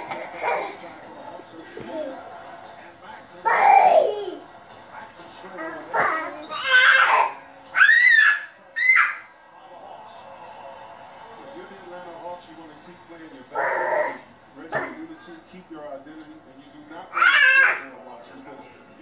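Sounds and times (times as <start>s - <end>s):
toddler babbling and shouting: 5.7s - 9.2s, 17.1s - 17.8s
toddler high-pitched squeals: 6.0s - 9.2s, 17.1s - 17.8s.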